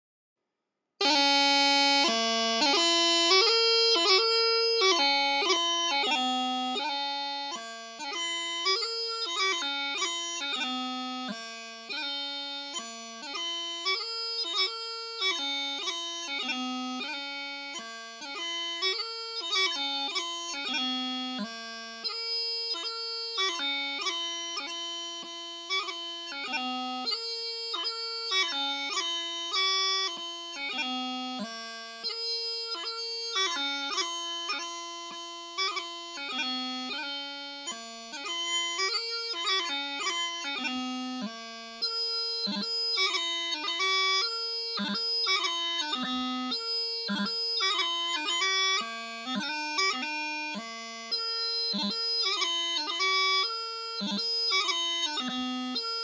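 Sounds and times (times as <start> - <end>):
bagpipe practice chanter melody: 1.0 - 56.0.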